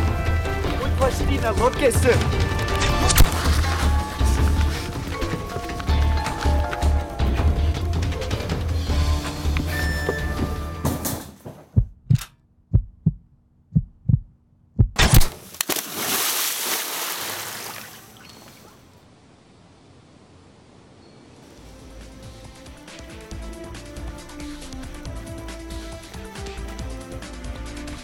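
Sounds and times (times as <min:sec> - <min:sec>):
soundtrack music: 0:00.0 - 0:11.1, 0:21.5 - 0:28.0
low hum: 0:02.2 - 0:10.7
big water splash: 0:15.1 - 0:18.8.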